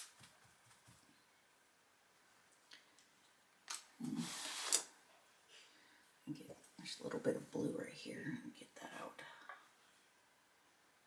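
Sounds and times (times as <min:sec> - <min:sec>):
paint jars and brushes rustling: 0:02.5 - 0:05.6.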